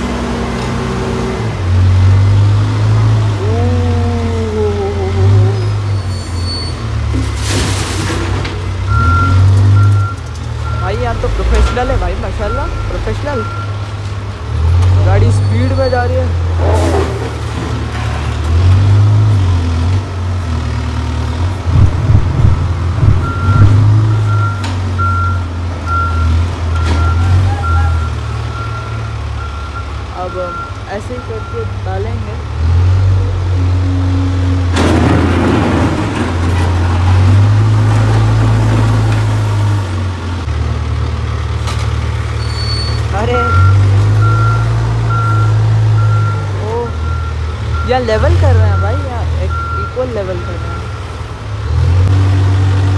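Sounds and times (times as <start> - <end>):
diesel engine running: 0.0 - 52.9
reversing alarm beeping: 8.9 - 13.8, 15.3 - 16.2, 21.7 - 31.7, 42.4 - 51.0
loud rush of noise: 21.3 - 24.4.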